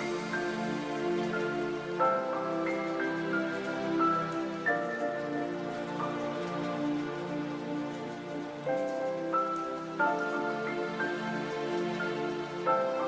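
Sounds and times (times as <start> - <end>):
gentle music of held chords: 0.0 - 13.0
soft rain-like hiss: 0.0 - 13.0.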